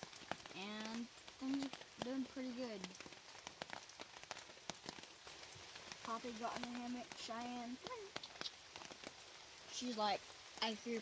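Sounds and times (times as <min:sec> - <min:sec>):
raindrops tapping on tarp: 0:00.0 - 0:11.0.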